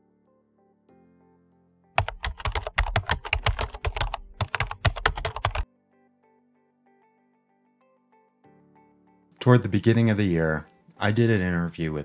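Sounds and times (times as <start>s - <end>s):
soft background music: 0.0s - 12.0s
computer keyboard typing: 2.0s - 5.6s.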